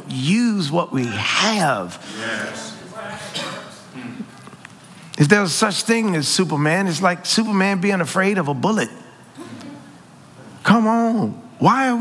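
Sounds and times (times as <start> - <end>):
person speaking: 0.0 - 12.0.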